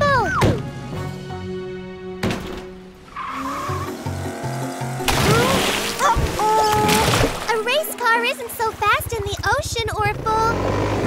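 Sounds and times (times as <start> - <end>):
cartoon background music: 0.0 - 10.6.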